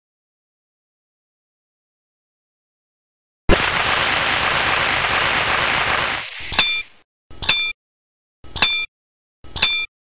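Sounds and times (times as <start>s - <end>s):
steady hiss: 3.5s - 7.0s
sharp click with ringing beep: 7.4s - 7.8s, 8.5s - 8.9s, 9.5s - 9.9s.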